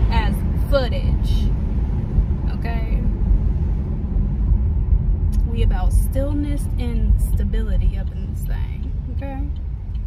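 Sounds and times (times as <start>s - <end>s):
road and wind noise in car: 0.0s - 10.0s.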